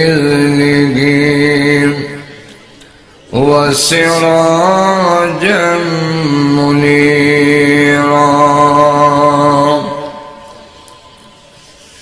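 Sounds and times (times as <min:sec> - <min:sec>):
man chanting melodically: 0:00.0 - 0:02.5, 0:03.3 - 0:11.1.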